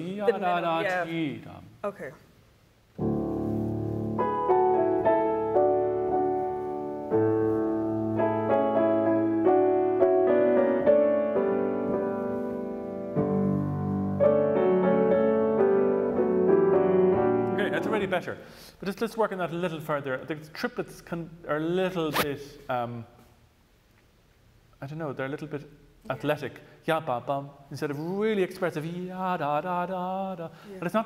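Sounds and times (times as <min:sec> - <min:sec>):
man speaking: 0:00.0 - 0:01.8, 0:17.6 - 0:23.2, 0:24.8 - 0:31.0
grand piano playing: 0:03.0 - 0:18.4.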